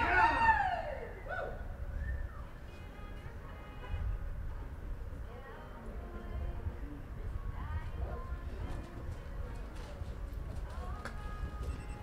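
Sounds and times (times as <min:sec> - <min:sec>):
horse hoofbeats on dirt: 0:08.6 - 0:12.0.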